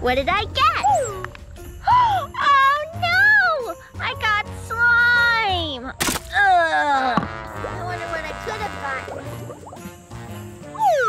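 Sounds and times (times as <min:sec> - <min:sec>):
background music: 0:00.0 - 0:11.0
slime splat: 0:06.0 - 0:06.4.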